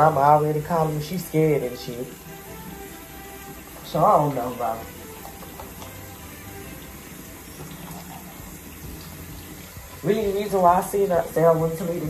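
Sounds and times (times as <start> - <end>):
tap running into sink: 0.0 - 12.0.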